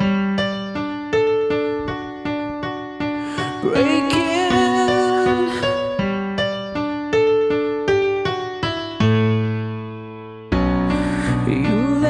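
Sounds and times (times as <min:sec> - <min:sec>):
digital piano playing: 0:00.0 - 0:12.0.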